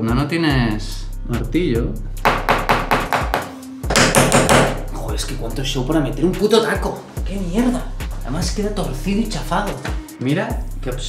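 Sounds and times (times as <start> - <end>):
pliers knocking wall plug: 2.3 - 4.8.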